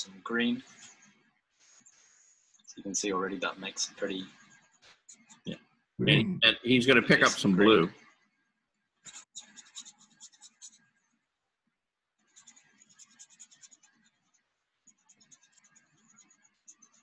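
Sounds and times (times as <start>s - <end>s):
paintbrush rubbing on paper: 0.6s - 5.5s, 9.1s - 11.1s, 12.2s - 17.0s.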